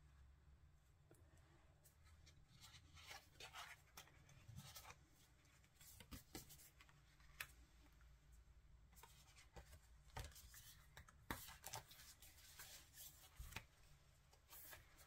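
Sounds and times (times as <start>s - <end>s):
faint paper rustles: 1.8s - 7.7s, 8.9s - 15.0s.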